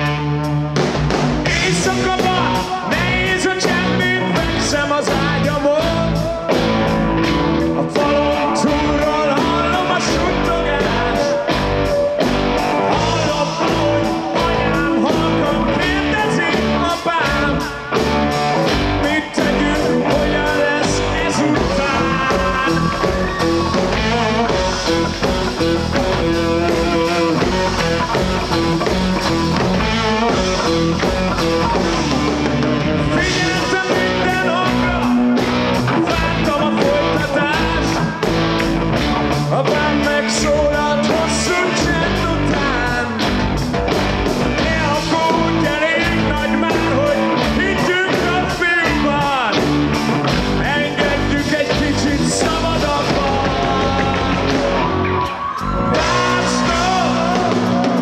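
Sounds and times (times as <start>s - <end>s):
distorted electric guitars: 0.0s - 58.0s
steady drum beat: 0.0s - 58.0s
man singing: 1.4s - 38.4s, 39.4s - 43.4s, 44.4s - 49.8s, 50.4s - 58.0s.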